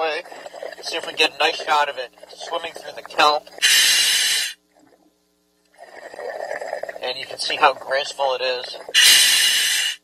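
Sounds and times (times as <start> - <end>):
scuba regulator air hiss: 3.6 - 4.6, 9.0 - 10.0.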